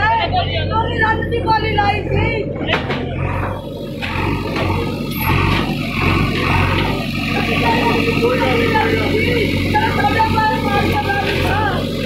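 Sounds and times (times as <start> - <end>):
diesel engine running: 0.0 - 12.0.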